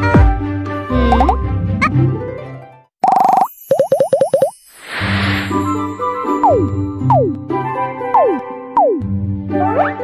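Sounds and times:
cartoon children's music: 3.1 - 10.0
shimmering whoosh: 4.6 - 6.2.

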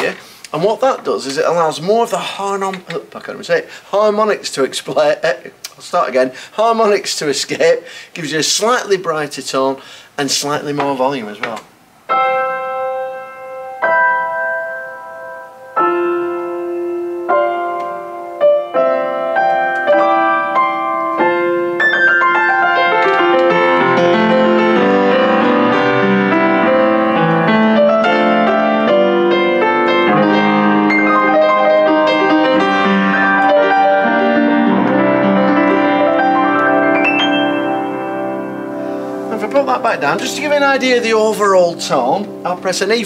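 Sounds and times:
upright piano playing: 10.6 - 43.0.

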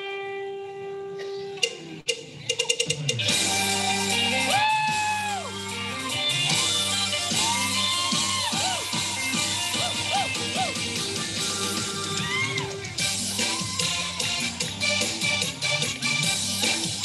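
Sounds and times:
live band playing: 1.6 - 17.0.

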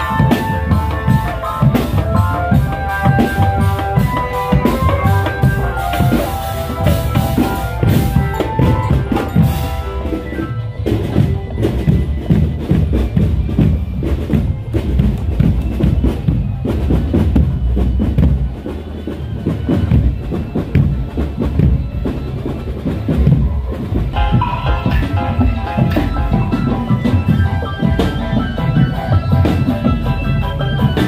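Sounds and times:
melody of held notes: 0.0 - 15.4, 20.2 - 31.0
bass drums: 0.0 - 31.0
snare drums: 0.0 - 31.0.

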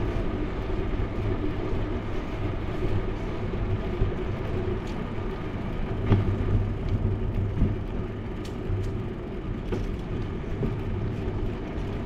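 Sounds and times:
bike clicks and rattles: 0.0 - 12.0
wind and road noise rumble: 0.0 - 12.0.

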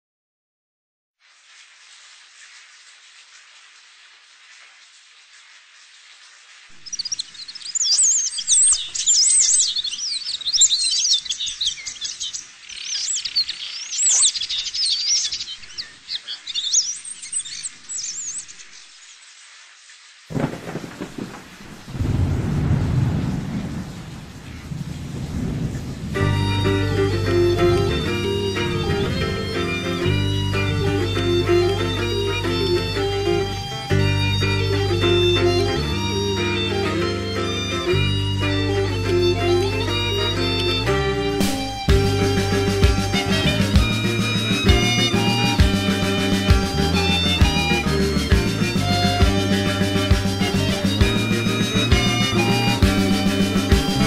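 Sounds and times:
birds chirping and singing: 6.8 - 18.9, 26.6 - 54.0
low rumbling swell: 26.0 - 47.0
folk metal band music: 26.2 - 54.0.

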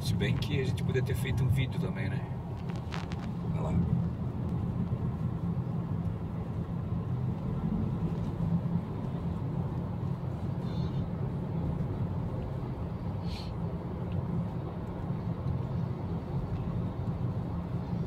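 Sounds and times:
road vehicle rumble: 0.0 - 18.0.

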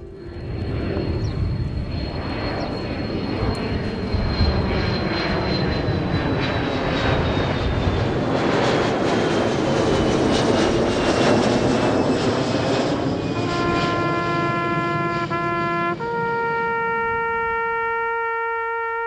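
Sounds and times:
high engine whine falling in pitch: 0.0 - 6.4
jet flying low overhead: 0.0 - 19.0.

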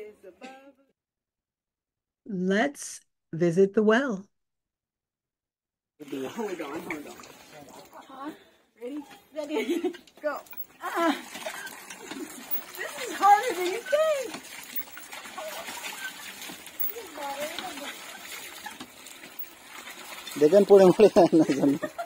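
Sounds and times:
water splashing into metal pail: 6.0 - 8.2, 9.6 - 22.0
people laughing: 9.4 - 10.0, 10.8 - 11.4, 12.0 - 14.3, 21.0 - 22.0
people talking: 12.8 - 14.3, 16.9 - 18.0, 20.4 - 21.8.

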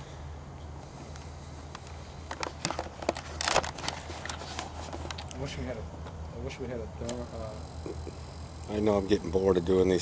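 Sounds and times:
steady low hum: 0.0 - 10.0
rustling scrape: 2.5 - 5.2.

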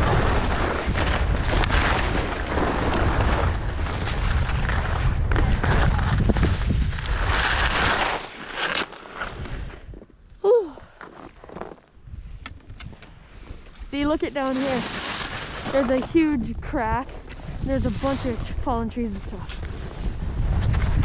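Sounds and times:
wind buffeting microphone: 0.0 - 7.8, 15.7 - 21.0
skis scraping through snow: 0.0 - 10.0, 13.2 - 21.0
person exclaiming: 10.4 - 10.8.

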